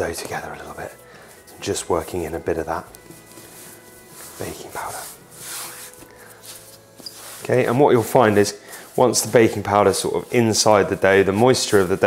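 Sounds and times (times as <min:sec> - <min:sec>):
hands kneading bread dough: 0:00.0 - 0:12.0.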